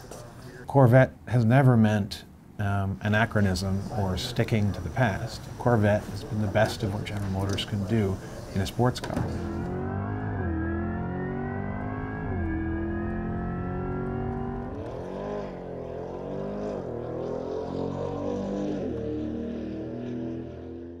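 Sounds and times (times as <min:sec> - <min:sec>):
car engine accelerating hard: 0:09.3 - 0:21.0.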